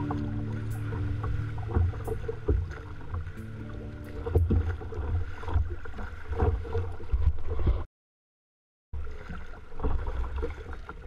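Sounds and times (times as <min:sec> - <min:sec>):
background music: 0:00.0 - 0:04.7
water slapping against kayak hull: 0:00.0 - 0:07.8, 0:09.0 - 0:11.0.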